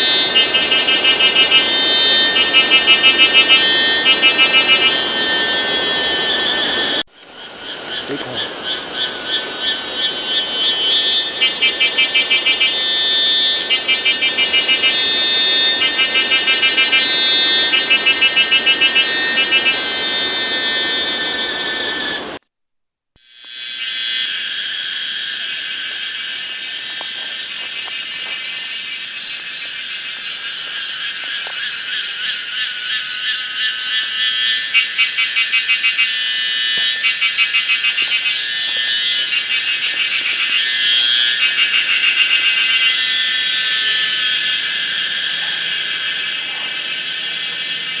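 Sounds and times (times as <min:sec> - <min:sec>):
cicadas buzzing: 0:00.0 - 0:22.4, 0:23.2 - 0:48.0.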